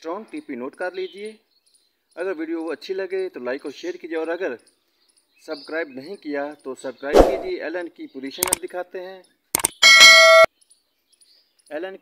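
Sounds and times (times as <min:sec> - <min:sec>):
notification bell ding: 0:09.8 - 0:10.5.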